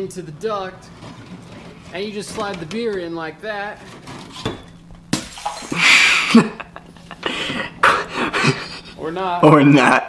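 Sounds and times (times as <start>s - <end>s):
things crashing on tiled floor: 4.0s - 6.4s.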